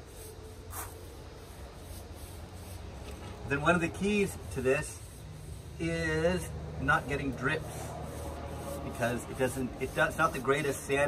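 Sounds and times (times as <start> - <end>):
paintbrush swishing: 0.0 - 11.0.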